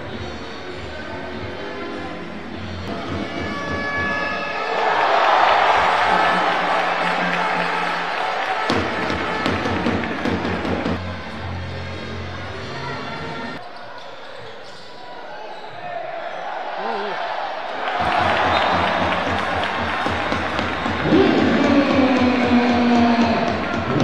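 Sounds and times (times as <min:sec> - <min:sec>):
crowd noise and voices: 0:00.0 - 0:24.0
basketball bouncing on court: 0:18.0 - 0:24.0.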